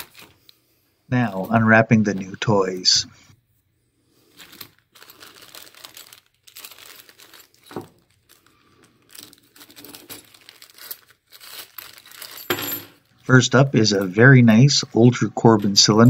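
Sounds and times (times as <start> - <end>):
plastic and paper crinkling: 0.0 - 3.0, 4.2 - 13.3.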